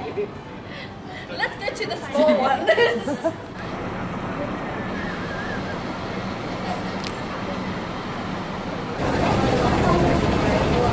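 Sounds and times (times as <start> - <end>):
crowd voices: 0.0 - 10.9
traffic noise: 0.0 - 10.9.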